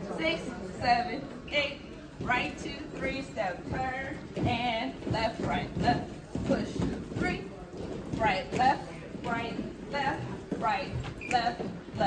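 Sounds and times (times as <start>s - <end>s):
woman calling out dance steps: 0.1s - 12.0s
sneakers thudding on stage: 2.2s - 12.0s.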